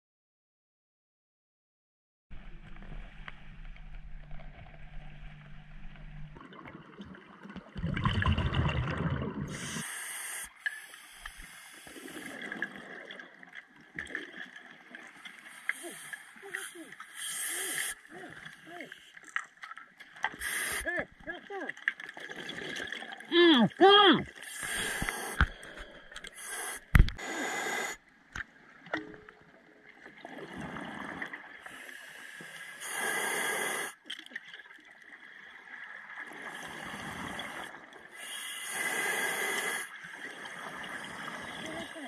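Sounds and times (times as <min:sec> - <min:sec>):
exhaled bubbles gurgling: 0:06.3 - 0:10.5
regulator hissing inhalations: 0:09.5 - 0:12.4, 0:15.5 - 0:18.0, 0:20.4 - 0:20.9, 0:24.4 - 0:28.0, 0:31.7 - 0:34.0, 0:37.6 - 0:39.9.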